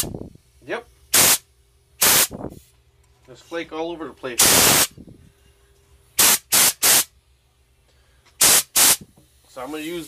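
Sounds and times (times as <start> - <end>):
compressed air spray gun hiss: 1.1 - 1.4, 2.0 - 2.6, 4.4 - 4.9, 6.2 - 7.1, 8.4 - 9.9.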